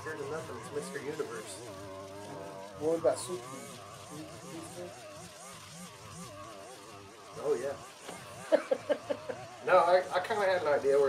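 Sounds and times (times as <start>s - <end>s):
string trimmer engine running: 0.0s - 11.0s.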